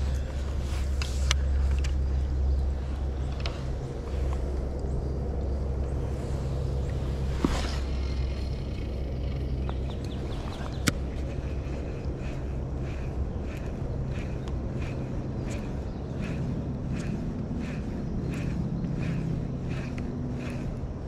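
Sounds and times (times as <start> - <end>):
fishing gear clicks and knocks: 0.0 - 2.2
low steady rumble: 0.0 - 21.0.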